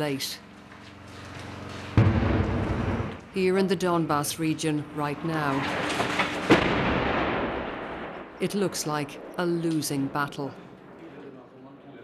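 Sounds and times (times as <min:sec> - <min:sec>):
deep rolling rumble: 0:00.4 - 0:03.5
heavy explosion: 0:01.9 - 0:03.2, 0:05.6 - 0:08.4.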